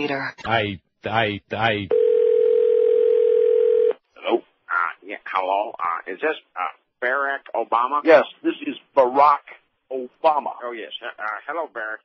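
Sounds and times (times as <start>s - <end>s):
telephone line tone: 1.9s - 4.0s.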